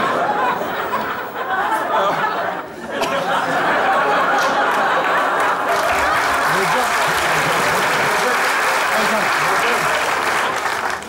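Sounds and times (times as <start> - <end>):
audience laughter: 0.0 - 11.0
studio audience applauding: 4.2 - 11.0.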